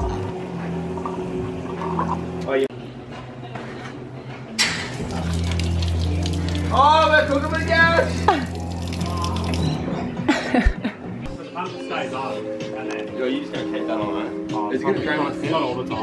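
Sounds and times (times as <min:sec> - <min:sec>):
water gushing onto concrete: 0:04.8 - 0:09.8
electric water pump humming: 0:04.8 - 0:09.9.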